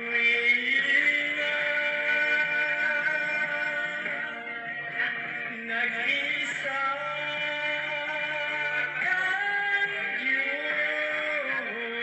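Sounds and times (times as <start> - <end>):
backing music: 0.0 - 12.0
man singing into a microphone: 0.0 - 12.0.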